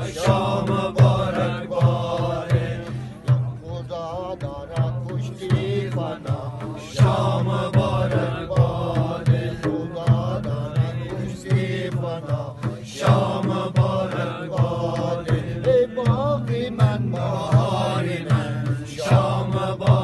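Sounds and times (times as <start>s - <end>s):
frame drum beat: 0.0s - 20.0s
men singing together: 0.0s - 20.0s.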